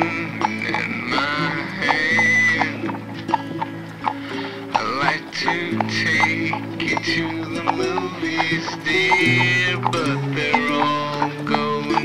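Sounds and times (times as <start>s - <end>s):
honky-tonk instrumental music: 0.0s - 12.0s.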